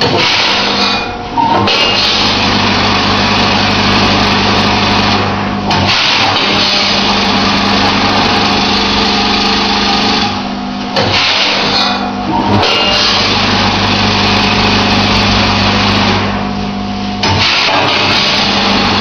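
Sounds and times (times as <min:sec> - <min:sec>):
machine electric hum: 0:00.0 - 0:19.0.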